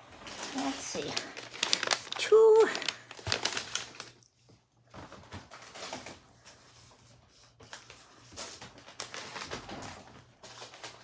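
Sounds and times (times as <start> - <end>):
paper bags rustling: 0.0 - 4.3, 4.9 - 11.0.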